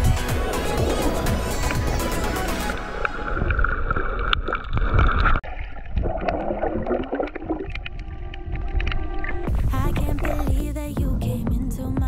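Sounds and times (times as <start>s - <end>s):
muffled underwater rush: 0.0s - 10.8s.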